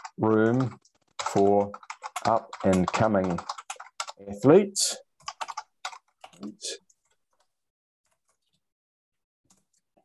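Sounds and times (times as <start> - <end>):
computer keyboard typing: 0.0 - 4.4, 5.2 - 7.5.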